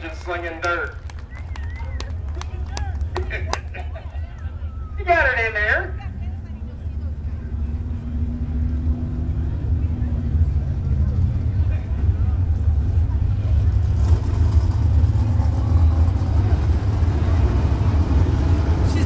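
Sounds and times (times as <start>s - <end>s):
faint voices: 0.0s - 19.0s
race car engines rumbling: 0.0s - 19.0s.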